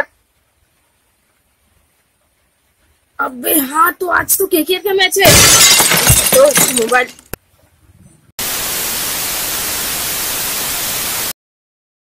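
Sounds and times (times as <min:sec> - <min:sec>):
television static hiss: 0:00.0 - 0:05.8, 0:08.4 - 0:11.4.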